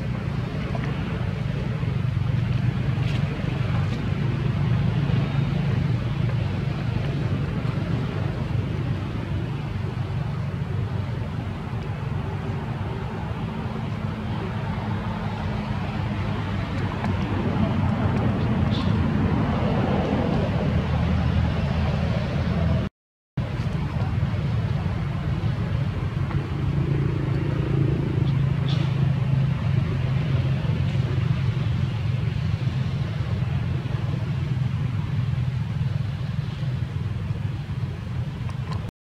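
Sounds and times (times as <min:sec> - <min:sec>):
steady low rumble: 0:00.0 - 0:38.9.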